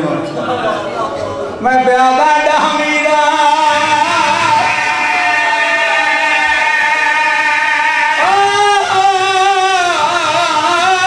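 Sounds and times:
man chanting through microphones: 0:01.5 - 0:11.0.

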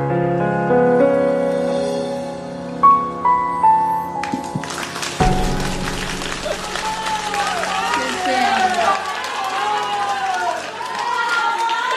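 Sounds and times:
applause: 0:04.2 - 0:11.9
audience cheering and shouting: 0:05.2 - 0:11.9.

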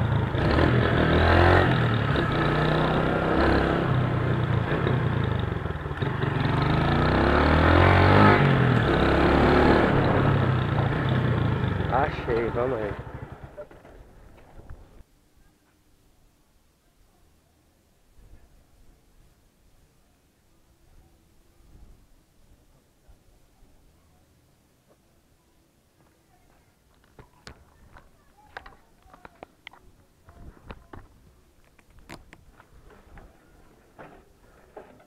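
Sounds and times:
motorcycle engine idling: 0:09.9 - 0:14.5
faint footsteps: 0:25.9 - 0:35.0.

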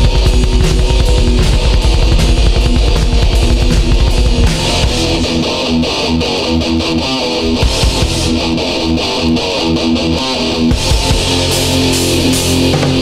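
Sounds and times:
distorted electric guitar riff: 0:00.0 - 0:13.0
heavy metal instrumental: 0:00.0 - 0:13.0.

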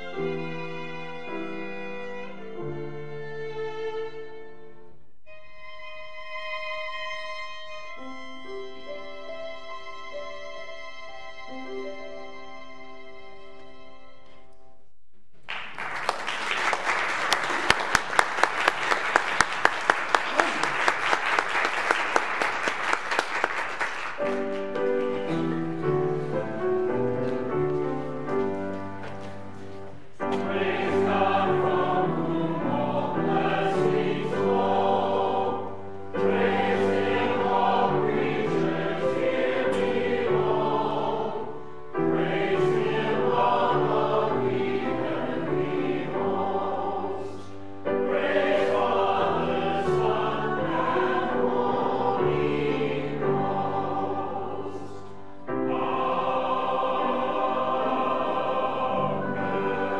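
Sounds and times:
church choir singing: 0:16.8 - 0:59.9.

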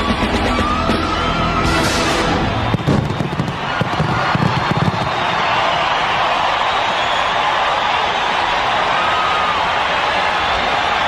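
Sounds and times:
crowd cheering: 0:00.0 - 0:11.0
pyrotechnics bangs and crackles: 0:02.5 - 0:05.6.

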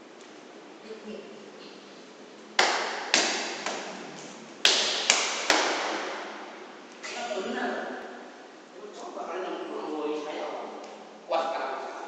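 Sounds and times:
sharp smacks of strikes: 0:02.6 - 0:03.9, 0:04.6 - 0:06.2.

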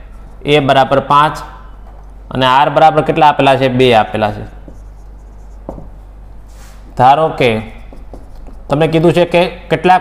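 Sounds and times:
steady low hum: 0:00.0 - 0:10.0
marker scratching whiteboard: 0:04.3 - 0:06.0, 0:06.6 - 0:09.3
marker tap on whiteboard: 0:04.6 - 0:04.9, 0:05.6 - 0:06.0, 0:07.8 - 0:08.7.

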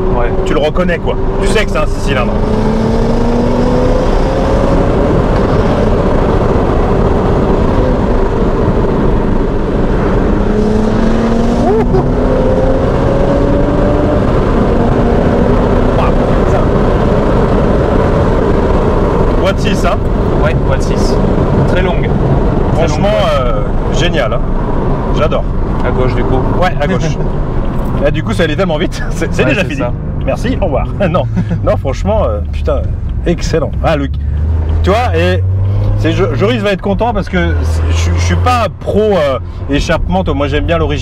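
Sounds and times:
car engine accelerating: 0:00.0 - 0:41.0.

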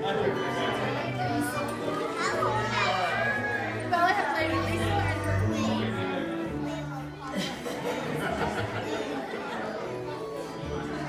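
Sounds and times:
chatter of busy room: 0:00.0 - 0:11.0.

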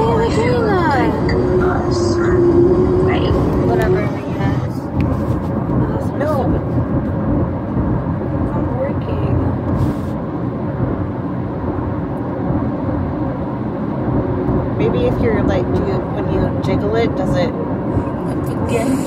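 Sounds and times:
faint voices: 0:00.0 - 0:04.9
car cabin road rumble: 0:00.0 - 0:19.0.

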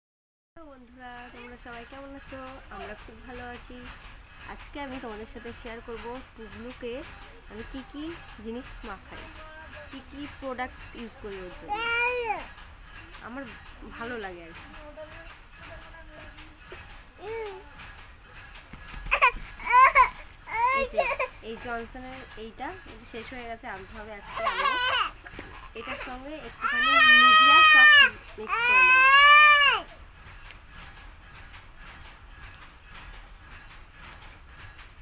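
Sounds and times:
toddler crying out: 0:11.7 - 0:12.5, 0:19.1 - 0:21.4, 0:24.3 - 0:25.2, 0:25.9 - 0:29.9.

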